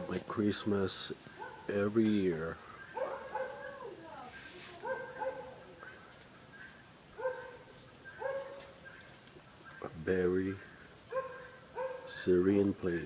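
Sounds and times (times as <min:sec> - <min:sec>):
dog barking: 0:01.4 - 0:01.7, 0:02.9 - 0:03.9, 0:04.8 - 0:05.6, 0:07.2 - 0:08.8, 0:11.1 - 0:12.2.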